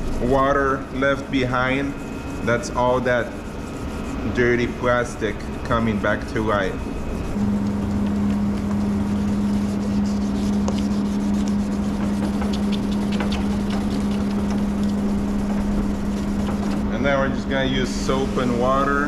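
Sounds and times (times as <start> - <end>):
wet sandpaper rubbing on plastic: 0.0 - 7.4, 8.0 - 19.0
motor humming: 0.0 - 19.0.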